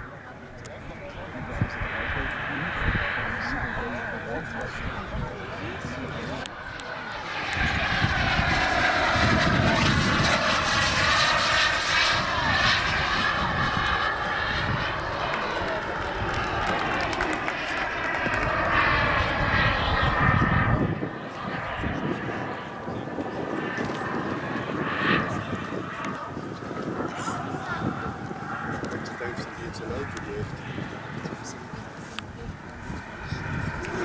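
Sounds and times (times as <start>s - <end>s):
model jet turbine flying past: 0.0s - 34.0s.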